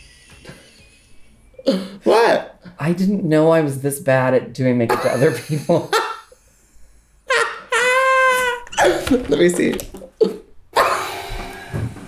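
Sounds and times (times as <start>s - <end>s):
high-pitched squeal of laughter: 7.3s - 9.0s.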